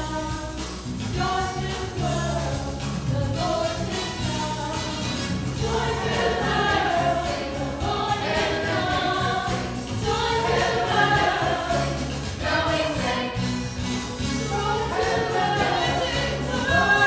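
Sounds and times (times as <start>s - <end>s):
steady bass line: 0.0s - 17.0s
church choir singing with band: 5.5s - 17.0s.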